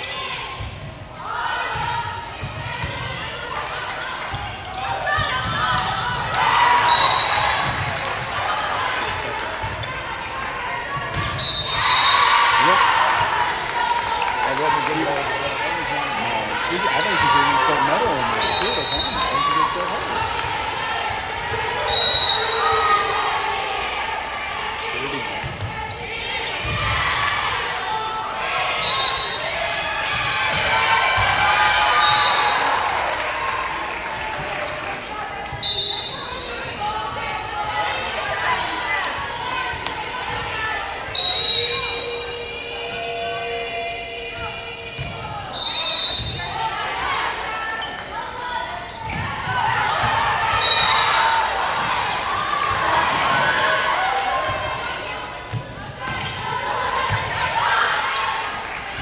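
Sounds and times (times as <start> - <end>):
spectators talking and cheering: 0.0 - 59.0.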